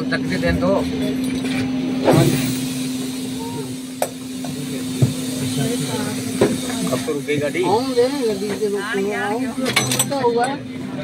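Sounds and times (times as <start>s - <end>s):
passengers' voices: 0.0s - 11.0s
steady low hum: 0.0s - 11.0s
person exclaiming: 3.3s - 3.8s.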